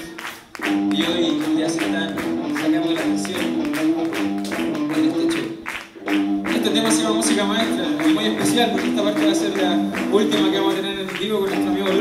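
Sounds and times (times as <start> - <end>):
steady drum beat: 0.0 - 5.4, 6.1 - 12.0
sustained guitar chords: 0.6 - 10.8.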